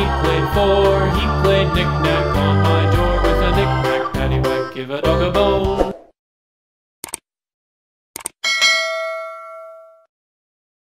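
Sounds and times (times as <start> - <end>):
quick double clicks: 7.0 - 7.2, 8.2 - 8.4
bell ding: 8.4 - 10.1.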